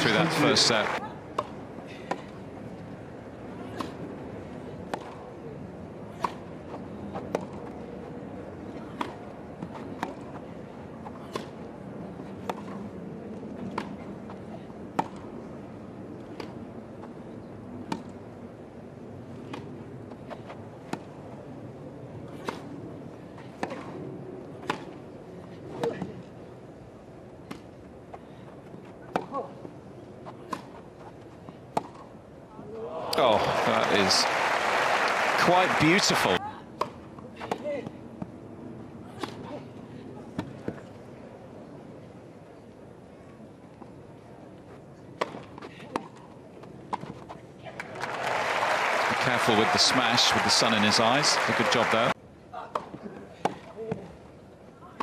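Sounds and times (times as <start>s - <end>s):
crowd applause: 0.0s - 1.0s, 33.0s - 36.4s, 47.8s - 52.2s
crowd murmur: 0.0s - 2.4s, 32.7s - 36.4s.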